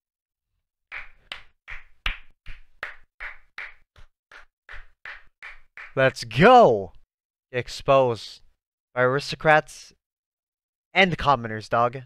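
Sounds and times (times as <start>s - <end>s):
person clapping hands: 0.9s - 6.0s.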